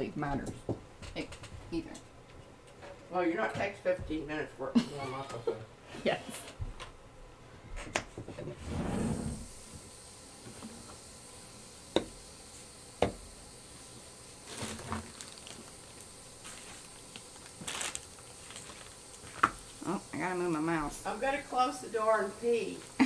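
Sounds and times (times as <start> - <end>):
rustling and handling noise: 13.7 - 19.8.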